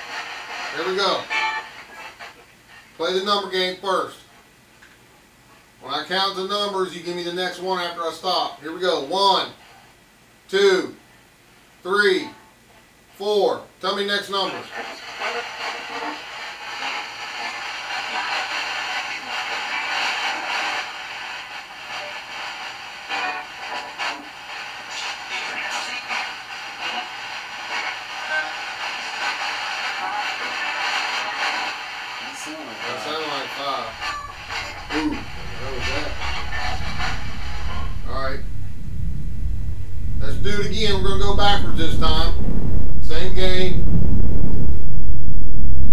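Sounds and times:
static hiss: 0.0 - 4.2, 14.0 - 45.9
low rumble: 33.8 - 45.9.

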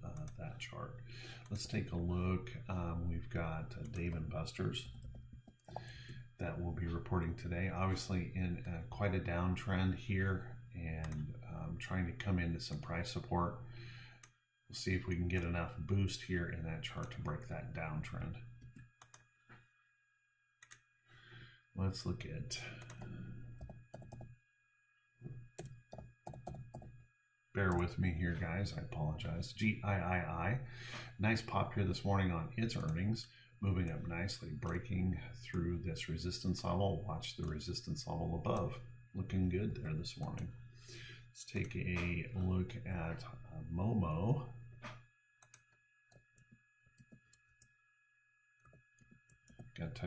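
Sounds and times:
faint steady hum: 0.0 - 19.9, 20.6 - 24.4, 25.2 - 50.0
computer keyboard typing: 4.8 - 5.9, 22.8 - 24.3, 25.6 - 26.9, 48.6 - 49.8
keyboard keystrokes: 23.6 - 24.3, 25.6 - 26.9.

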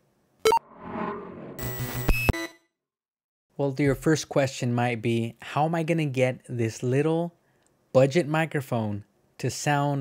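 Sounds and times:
ringing synth tones: 0.5 - 0.8
whoosh: 0.5 - 2.3
short sharp electronic blip: 0.5 - 2.6.

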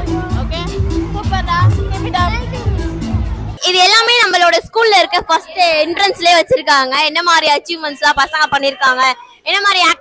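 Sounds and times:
music with steady bass beat: 0.0 - 3.6
children chattering: 1.2 - 10.0.

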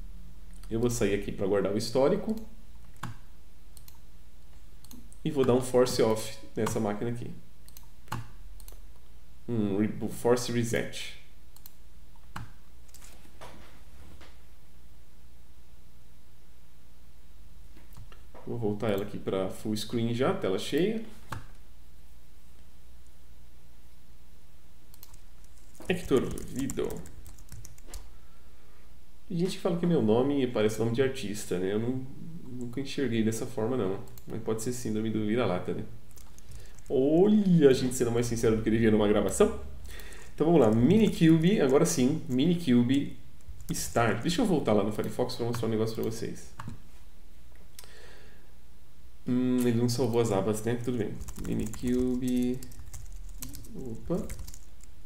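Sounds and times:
computer mouse clicks: 2.3 - 3.2, 3.8 - 5.6, 7.6 - 9.1, 11.6 - 13.2, 24.9 - 28.1
computer keyboard keystrokes: 24.9 - 28.1, 36.1 - 36.9, 51.2 - 54.9.

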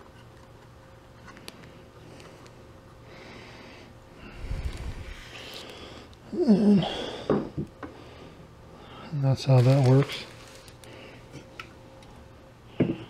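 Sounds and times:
low hum: 0.8 - 7.3.

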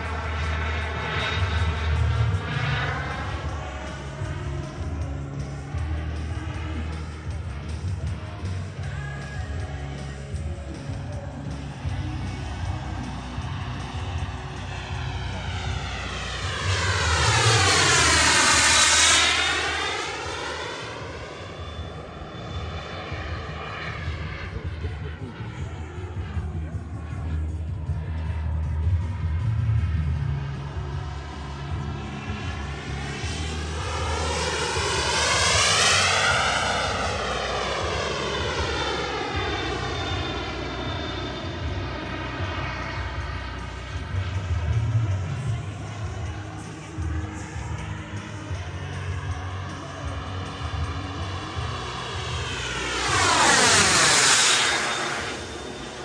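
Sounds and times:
jet turbine flying past: 0.0 - 56.0.

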